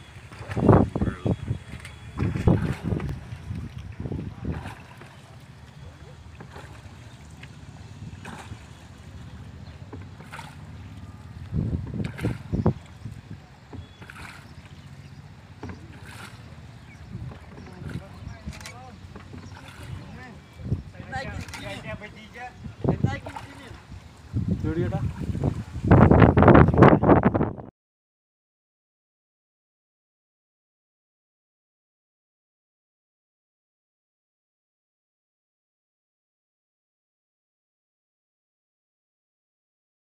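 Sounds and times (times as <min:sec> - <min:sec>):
paddle splashing: 0:00.0 - 0:26.7
water lapping against wooden boat: 0:00.0 - 0:27.4.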